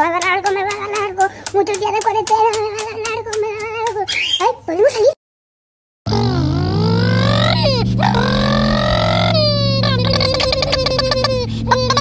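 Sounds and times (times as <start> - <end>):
low steady drone: 6.1 - 12.0
man imitating motorcycle engine: 6.1 - 12.0.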